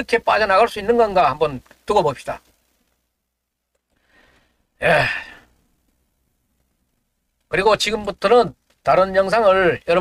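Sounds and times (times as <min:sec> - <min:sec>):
man breathing in: 0:04.0 - 0:05.6
man sighing in exasperation: 0:04.8 - 0:05.5.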